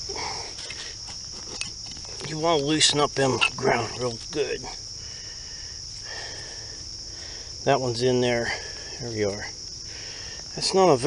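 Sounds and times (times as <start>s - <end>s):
hands scraping soil and leaves: 0.0s - 4.8s
crickets chirping: 0.0s - 11.0s.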